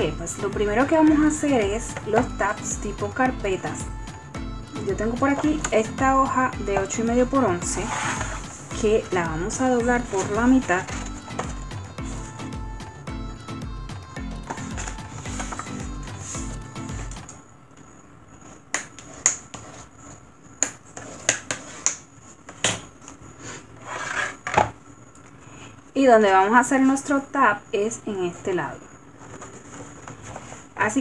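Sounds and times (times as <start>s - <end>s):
background music with steady beat: 0.0s - 17.5s
card sliding scrape: 7.7s - 8.7s, 14.4s - 17.3s, 23.4s - 24.6s.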